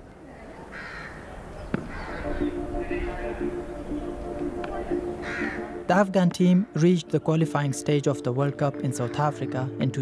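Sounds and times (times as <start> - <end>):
crows cawing: 0.7 - 3.9, 5.2 - 5.8.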